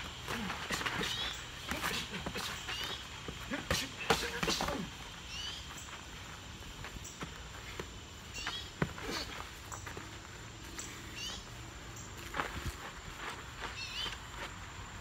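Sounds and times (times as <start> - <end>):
shoes scuffing on dirt: 0.0 - 15.0.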